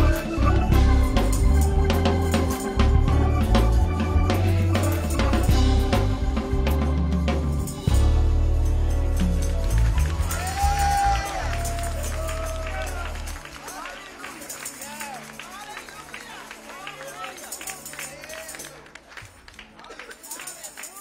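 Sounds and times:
gospel band chord: 0:00.0 - 0:20.0
hands clapping: 0:09.2 - 0:21.0.

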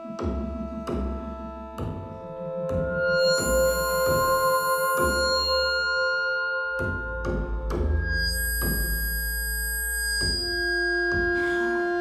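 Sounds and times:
low electronic drone: 0:00.1 - 0:12.0
steady sine-like electronic tones: 0:02.5 - 0:12.0.

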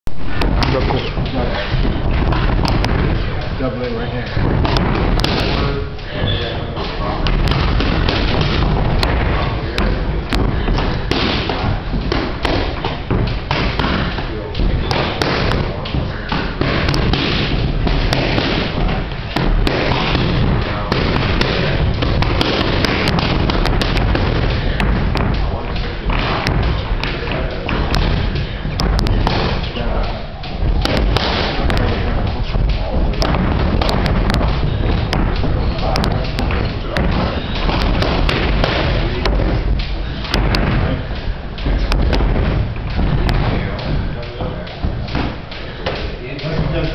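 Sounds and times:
gym noise with voices: 0:00.1 - 0:46.9
boxing gloves hitting mitts: 0:00.3 - 0:46.9.

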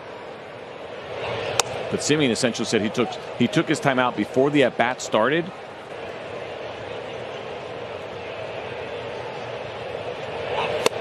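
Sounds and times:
crowd murmur: 0:00.0 - 0:11.0
bat cracking ball: 0:01.5 - 0:01.8, 0:10.7 - 0:11.0.

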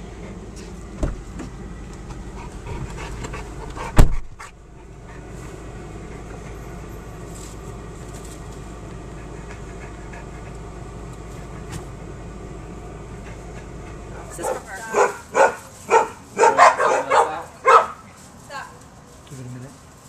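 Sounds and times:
low car hum: 0:00.0 - 0:20.0
loud thump: 0:01.0 - 0:01.5, 0:03.8 - 0:04.4
dog panting: 0:02.2 - 0:05.4, 0:06.0 - 0:06.8, 0:09.0 - 0:11.7, 0:13.0 - 0:17.9.

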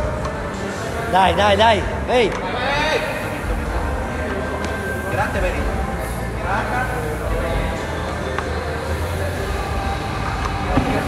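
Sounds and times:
voices in a gym: 0:00.0 - 0:11.0.

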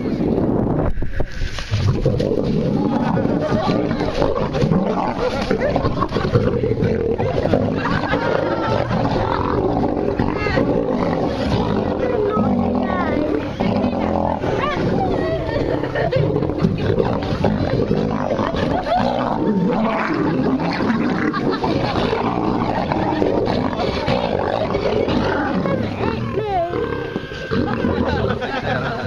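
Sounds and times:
lions growling and snarling: 0:00.0 - 0:29.0
people's voices: 0:00.0 - 0:29.0.

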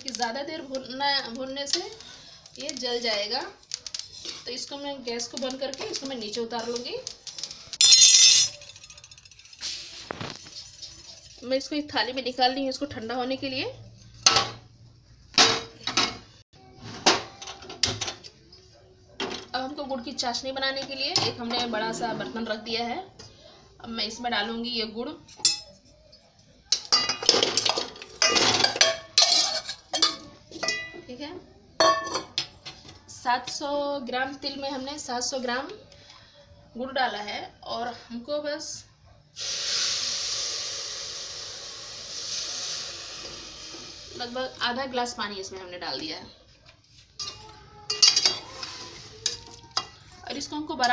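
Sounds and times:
metal pot set on stove: 0:00.0 - 0:14.7, 0:15.3 - 0:23.4, 0:25.3 - 0:25.9, 0:26.7 - 0:35.7, 0:39.4 - 0:50.9
water pouring into a pot: 0:08.5 - 0:11.6.

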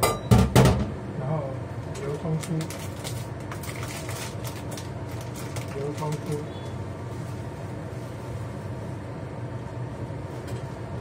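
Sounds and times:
low kitchen hum: 0:00.0 - 0:11.0.

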